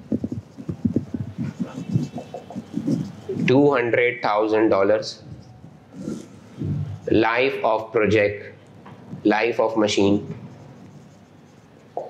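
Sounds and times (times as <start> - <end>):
marker writing on whiteboard: 0.0 - 3.9, 5.2 - 7.6, 8.6 - 12.0.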